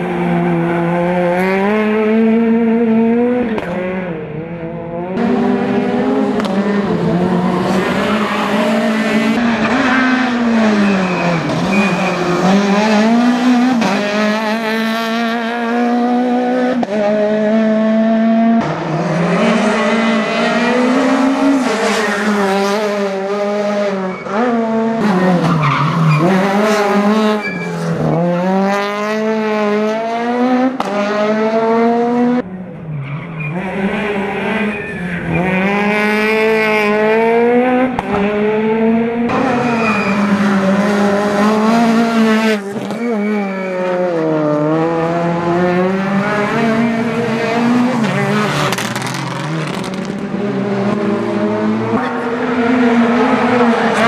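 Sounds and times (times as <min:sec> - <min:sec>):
rally car engine revving: 0:00.0 - 0:54.0.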